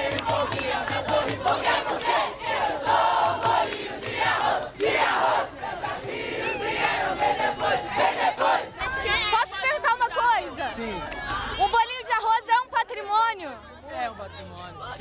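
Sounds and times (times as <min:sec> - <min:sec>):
crowd of teenagers shouting: 0:00.0 - 0:15.0.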